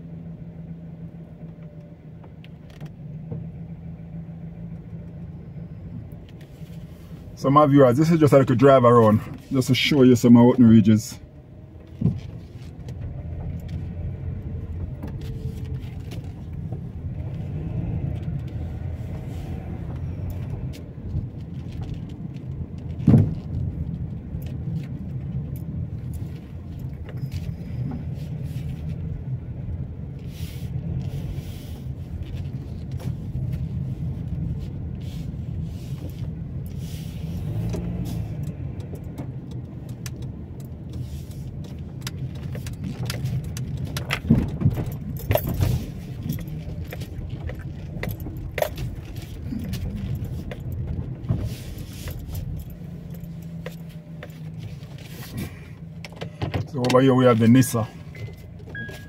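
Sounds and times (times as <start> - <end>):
car engine and tyres rumbling: 0.0 - 59.0
rattles and clicks inside car: 0.0 - 59.0.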